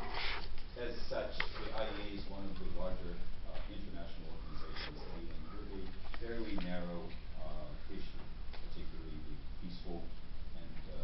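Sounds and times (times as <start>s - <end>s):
low room hum: 0.0s - 11.0s
man speaking hesitantly: 0.8s - 11.0s.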